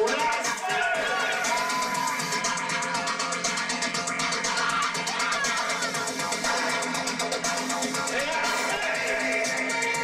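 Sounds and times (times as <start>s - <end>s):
man singing: 0.0s - 2.4s, 8.0s - 10.0s
fast electronic beat: 0.0s - 10.0s.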